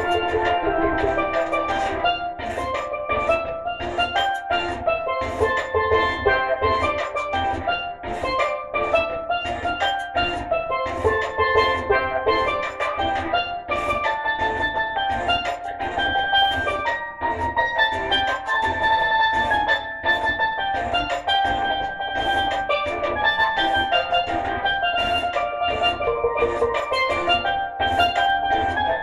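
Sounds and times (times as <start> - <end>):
low bass accompaniment: 0.0 - 29.0
steel pan reggae melody: 0.0 - 29.0.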